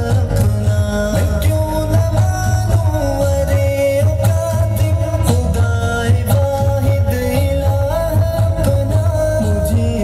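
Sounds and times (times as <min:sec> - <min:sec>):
backing track with steady beat: 0:00.0 - 0:10.0.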